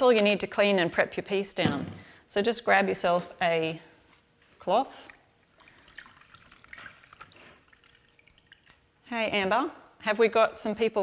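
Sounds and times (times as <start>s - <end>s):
water splashing and trickling: 5.0s - 9.1s.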